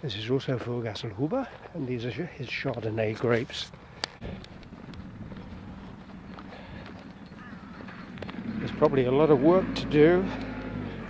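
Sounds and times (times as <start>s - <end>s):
footsteps on gravel: 0.3s - 9.1s, 10.2s - 10.9s
distant tractor engine: 1.4s - 11.0s.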